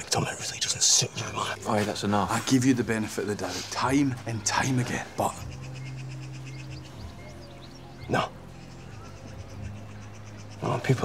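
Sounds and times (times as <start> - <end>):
soft music of low held chords: 0.0 - 11.0.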